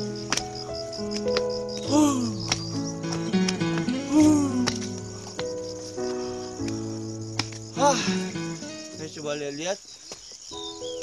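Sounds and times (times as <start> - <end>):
background music held notes: 0.0 - 9.5.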